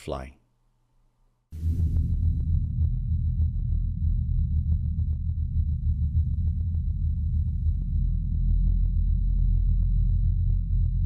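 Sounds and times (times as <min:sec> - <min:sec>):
deep rumbling drone: 0:01.5 - 0:11.0.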